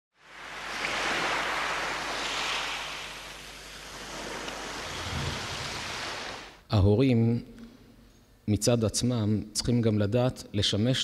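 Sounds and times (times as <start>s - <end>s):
airy whoosh: 0.2s - 6.6s.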